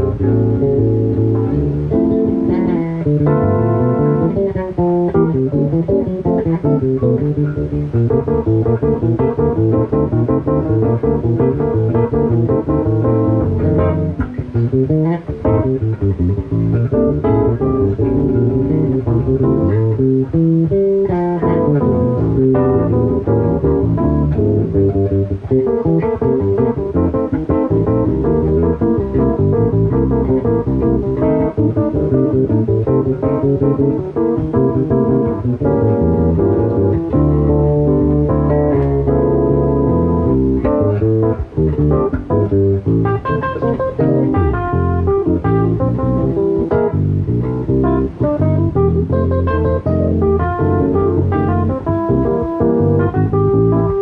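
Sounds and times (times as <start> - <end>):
electric bass line: 0.0 - 54.0
stage piano chords: 0.0 - 54.0.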